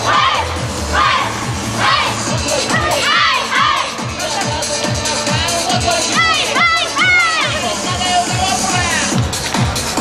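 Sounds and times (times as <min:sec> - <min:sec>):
dancers shouting calls together: 0:00.0 - 0:04.1, 0:06.0 - 0:07.8
dance music with steady beat: 0:00.0 - 0:10.0.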